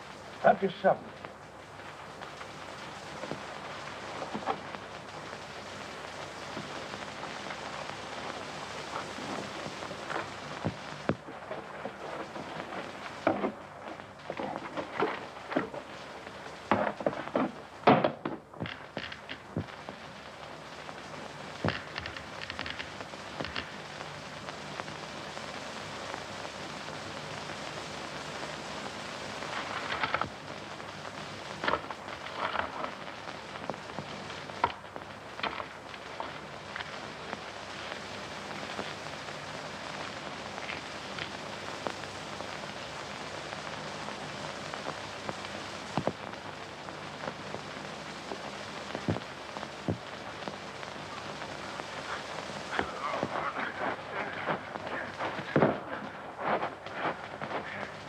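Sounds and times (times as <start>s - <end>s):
steady hiss: 0.0s - 58.0s.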